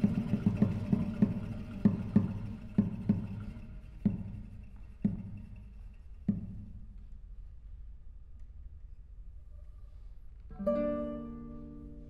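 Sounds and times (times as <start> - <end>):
classical guitars plucking: 0.0 - 6.8, 10.5 - 12.0.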